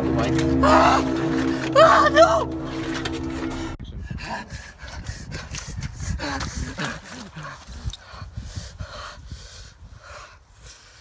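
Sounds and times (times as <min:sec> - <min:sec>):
boy panting and gasping: 0:04.0 - 0:11.0.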